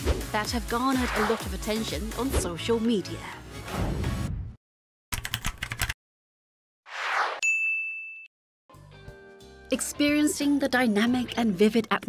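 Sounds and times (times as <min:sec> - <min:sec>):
music: 0:00.0 - 0:04.6, 0:08.7 - 0:12.0.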